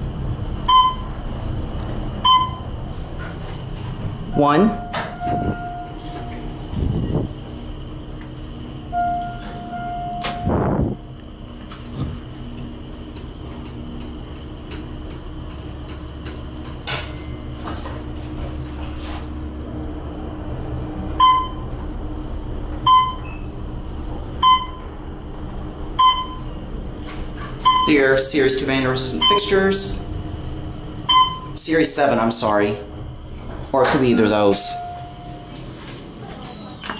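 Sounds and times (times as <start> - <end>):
elevator car humming: 0.0 - 36.9
elevator doors sliding: 0.0 - 36.9
electronic beeps: 29.2 - 29.6.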